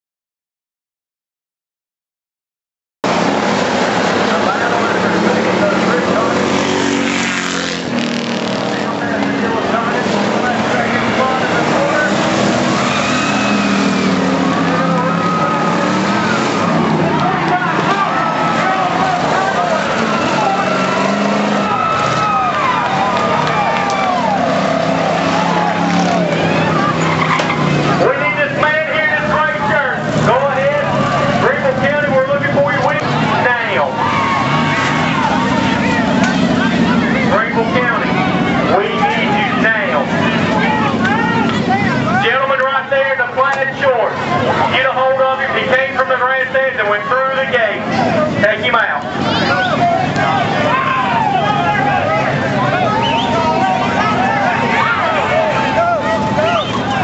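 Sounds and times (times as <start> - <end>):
race car engines revving: 3.0 - 57.0
voices: 3.3 - 57.0.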